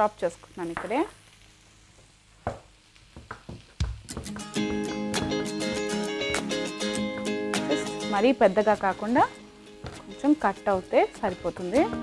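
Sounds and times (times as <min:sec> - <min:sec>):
plucked string music with beat: 0:04.0 - 0:12.0
knife knocking on chopping board: 0:09.8 - 0:10.1.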